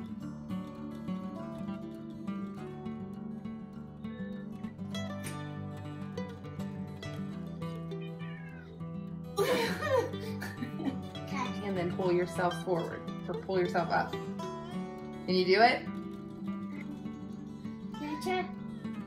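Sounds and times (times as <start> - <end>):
acoustic guitar music: 0.0 - 19.0.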